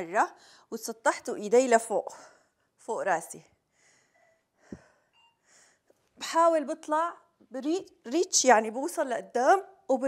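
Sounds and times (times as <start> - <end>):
woman breathing softly: 3.7 - 5.9.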